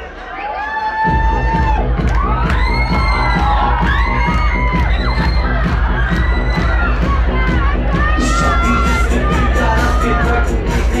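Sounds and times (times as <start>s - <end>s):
crowd cheering and shouting: 0.0s - 11.0s
loud dance music with bass beat: 0.0s - 11.0s.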